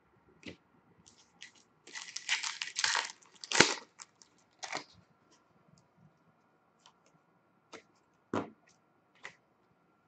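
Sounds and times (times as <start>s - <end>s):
foil wrapper tearing and crinkling: 1.4s - 4.9s.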